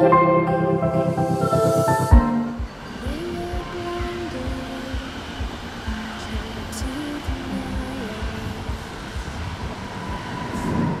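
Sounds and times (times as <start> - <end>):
electronic music with low beat: 0.0 - 3.6
electric train running: 0.0 - 11.0
steady high whine: 0.0 - 11.0.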